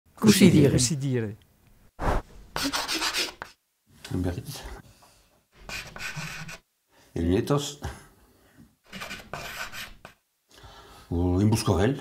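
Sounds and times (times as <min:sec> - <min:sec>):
chalk scratching on blackboard: 0:02.0 - 0:03.6, 0:05.6 - 0:06.6, 0:08.9 - 0:10.2.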